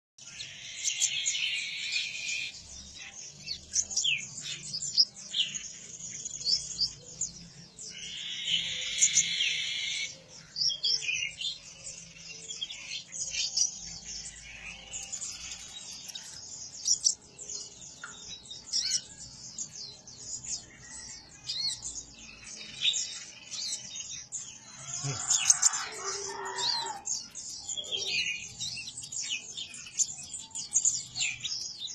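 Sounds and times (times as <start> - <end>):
bird high chirps and clicks: 17.9 - 19.1.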